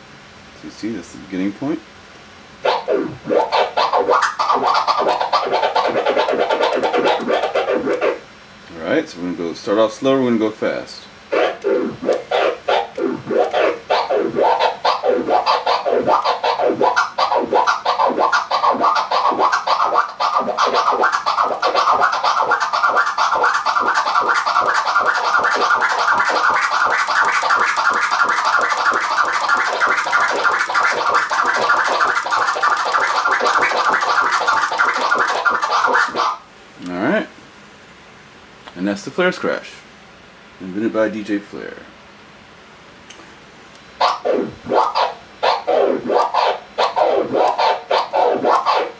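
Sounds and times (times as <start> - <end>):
turntable record scratching: 2.6 - 9.0, 9.7 - 36.4, 44.0 - 48.9.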